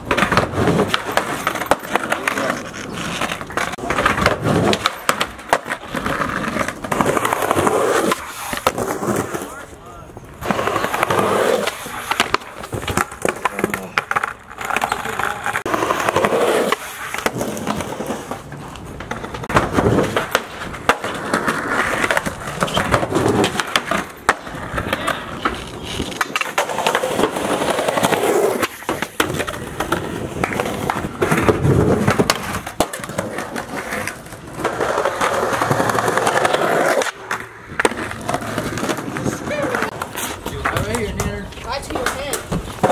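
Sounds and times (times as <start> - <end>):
skateboard tail pops and landings: 0.0 - 9.2, 10.4 - 15.0, 15.7 - 40.9, 42.0 - 42.9
skateboards rolling on concrete: 0.0 - 42.9.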